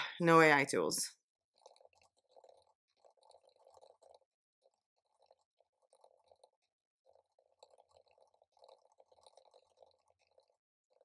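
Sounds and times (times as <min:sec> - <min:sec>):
typing on laptop keyboard: 0:01.6 - 0:11.0.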